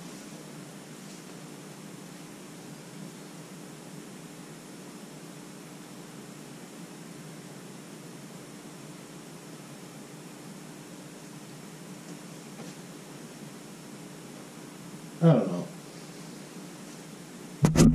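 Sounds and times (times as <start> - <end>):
steady hiss: 0.0 - 17.7.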